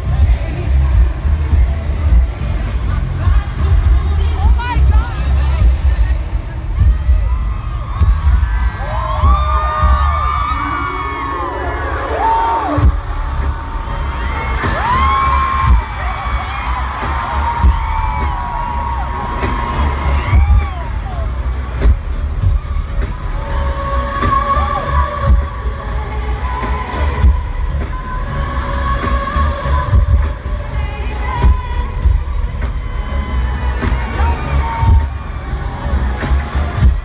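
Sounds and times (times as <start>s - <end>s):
loud pop music over pa: 0.0s - 37.0s.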